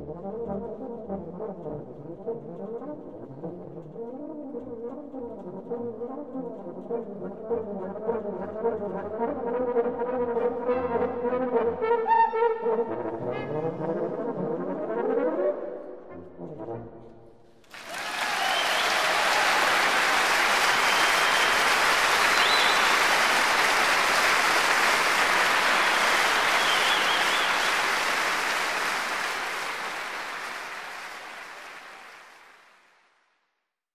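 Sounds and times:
audience applauding: 0:17.6 - 0:33.3.

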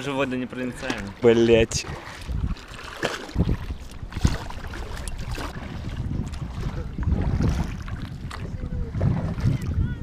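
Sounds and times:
water splashing around boat: 0:00.0 - 0:10.0
wind on microphone: 0:01.5 - 0:10.0.

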